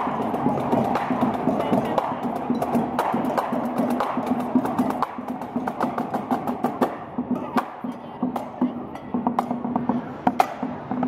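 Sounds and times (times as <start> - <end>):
snare drum strokes: 0.0 - 8.6
marching band playing: 0.0 - 11.0.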